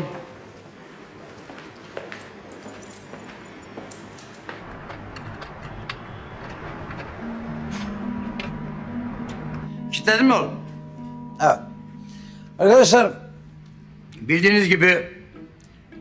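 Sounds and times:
quiet film underscore: 4.6 - 16.0.

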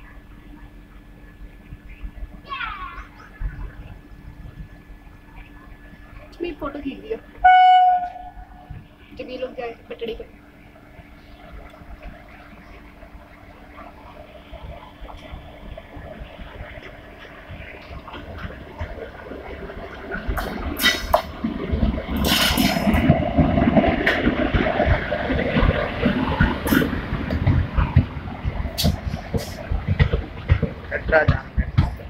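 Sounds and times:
train passing with rumble: 0.0 - 32.0
wheels clacking over rails: 11.2 - 32.0.

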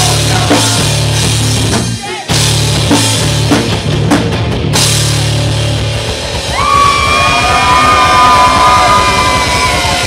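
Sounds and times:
hard rock band playing: 0.0 - 10.0.

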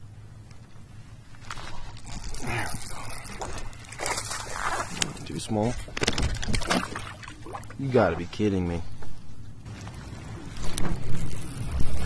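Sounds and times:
fish splashing in water: 3.1 - 5.3, 6.0 - 7.8.

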